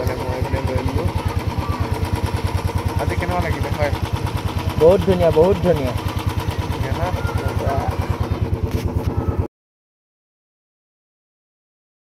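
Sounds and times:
engine running with low pulse: 0.0 - 9.5.

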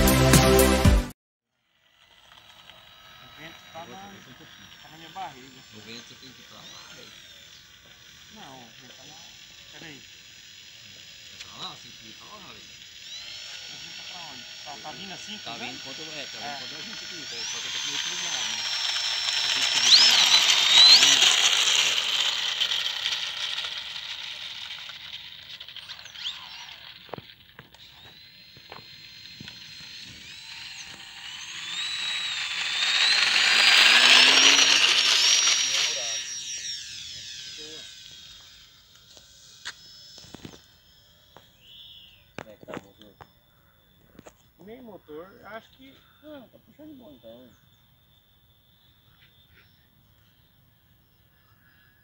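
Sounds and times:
model plane motor whining: 1.5 - 52.0.

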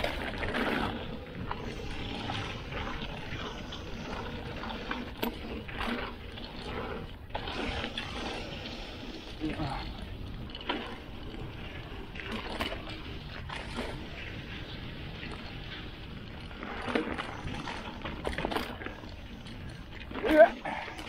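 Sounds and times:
tyre and wind rumble: 0.0 - 21.0.

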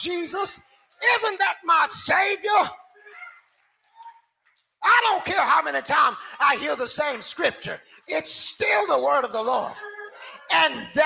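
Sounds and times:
man preaching amplified: 0.0 - 2.9, 4.8 - 11.0.

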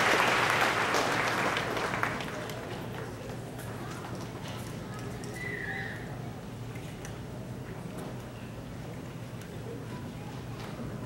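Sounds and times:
murmur of voices: 0.6 - 11.0.

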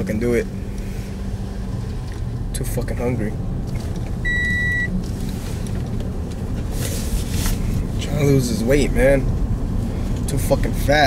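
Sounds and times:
car cabin rumble: 0.0 - 11.0
high electronic beep: 4.2 - 5.0.

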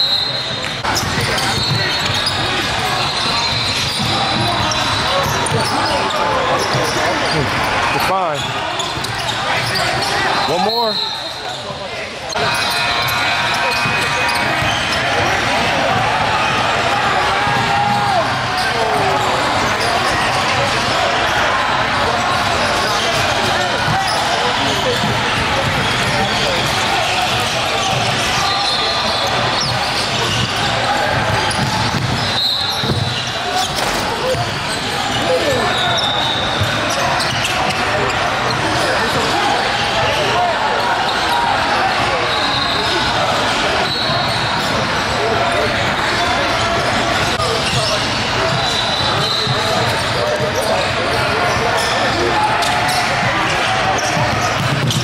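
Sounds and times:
chatter of people: 0.0 - 55.0
sneakers squeaking: 0.0 - 55.0.

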